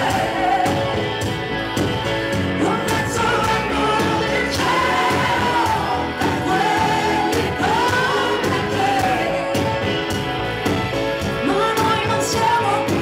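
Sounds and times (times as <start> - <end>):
band playing: 0.0 - 13.0
woman singing pop ballad: 2.6 - 10.0, 11.3 - 13.0.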